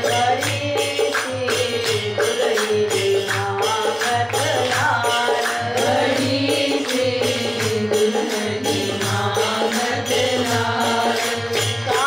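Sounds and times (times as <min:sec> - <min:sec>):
harmonium: 0:00.0 - 0:12.0
percussion beat: 0:00.0 - 0:12.0
woman singing devotional song: 0:00.0 - 0:12.0.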